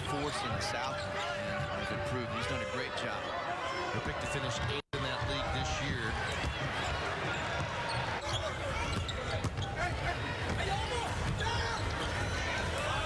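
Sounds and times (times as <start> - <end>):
crowd chatter: 0.0 - 13.0
basketball bouncing on court: 6.1 - 12.4.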